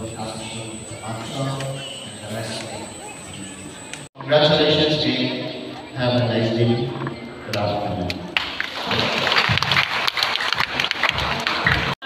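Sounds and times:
man speaking: 0:00.0 - 0:03.5, 0:04.2 - 0:08.1
audience applauding: 0:08.4 - 0:12.0.

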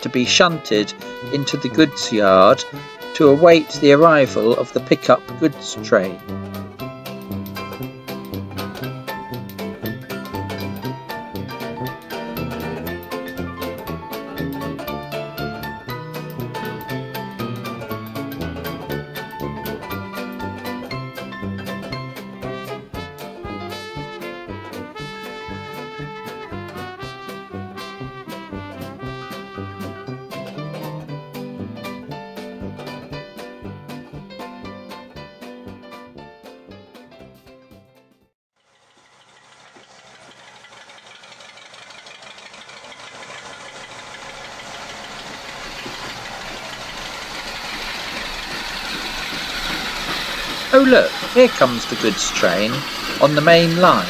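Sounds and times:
plucked-string music: 0:00.0 - 0:36.9, 0:45.6 - 0:54.0
approaching train rushing: 0:39.3 - 0:54.0.

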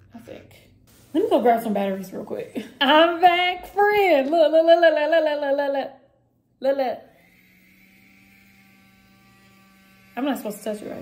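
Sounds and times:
milk frother motor humming: 0:06.8 - 0:11.0.

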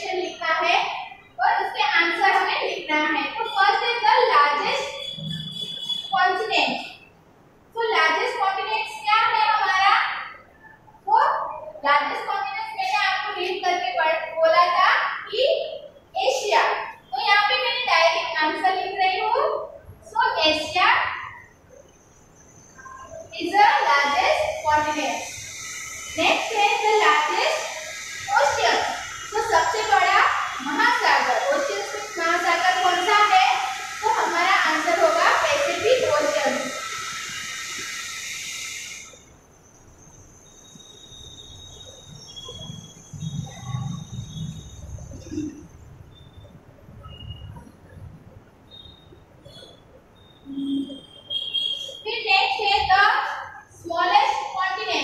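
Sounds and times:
faint high-pitched whine: 0:00.0 - 0:55.0
marker squeaking on whiteboard: 0:03.4 - 0:06.1.

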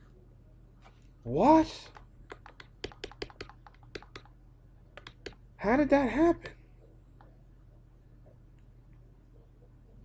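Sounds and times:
keyboard keys clicking: 0:01.9 - 0:04.3, 0:05.0 - 0:05.4.

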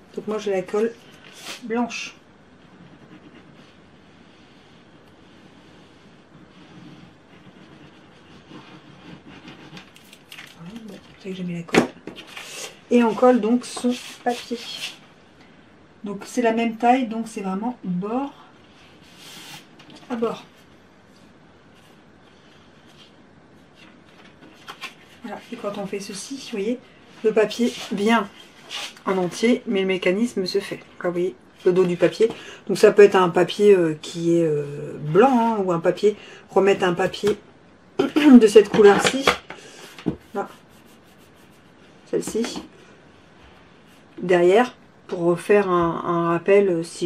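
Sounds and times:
paper rustling: 0:06.6 - 0:11.2.

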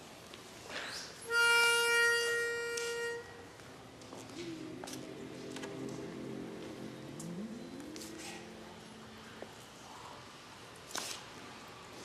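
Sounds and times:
pitch pipe note: 0:01.2 - 0:03.6
men humming a chord: 0:04.3 - 0:09.2.

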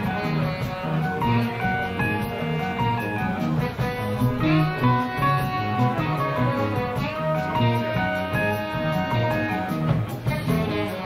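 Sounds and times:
lead guitar: 0:00.0 - 0:11.0
live jazz-funk band: 0:00.0 - 0:11.0.

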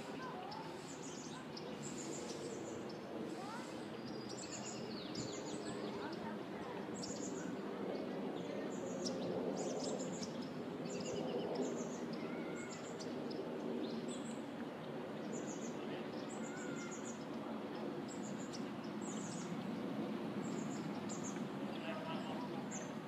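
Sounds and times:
low background murmur: 0:00.0 - 0:23.0
small birds chirping: 0:00.0 - 0:23.0.

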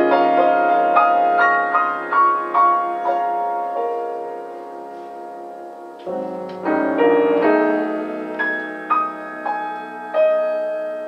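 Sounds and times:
piano chords ringing: 0:00.0 - 0:11.0.

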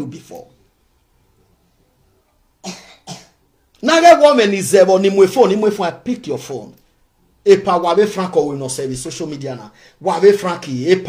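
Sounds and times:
man coughing: 0:02.6 - 0:03.4.

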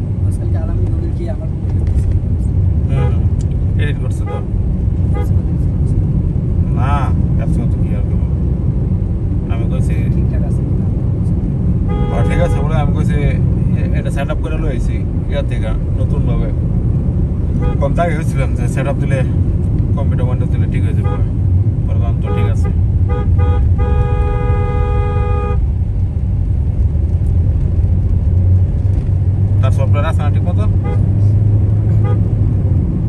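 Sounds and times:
road and engine rumble: 0:00.0 - 0:33.0
vehicle horn: 0:02.9 - 0:03.3, 0:04.2 - 0:04.5, 0:05.1 - 0:05.4, 0:11.8 - 0:12.9, 0:17.6 - 0:18.0, 0:21.0 - 0:21.3, 0:22.2 - 0:25.7, 0:30.8 - 0:31.2, 0:31.9 - 0:32.3.

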